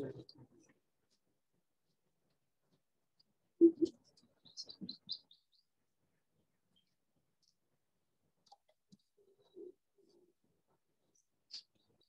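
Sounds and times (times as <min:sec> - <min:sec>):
songbird high chirps: 0:03.8 - 0:05.7.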